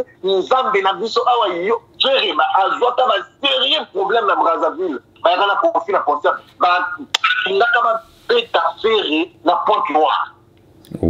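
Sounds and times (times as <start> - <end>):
person talking over telephone: 0.0 - 10.4.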